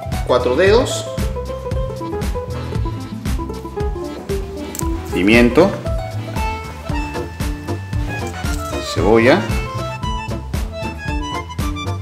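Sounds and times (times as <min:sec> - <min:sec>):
held instrumental notes: 0:00.0 - 0:12.0
steady drum beat: 0:01.2 - 0:10.8.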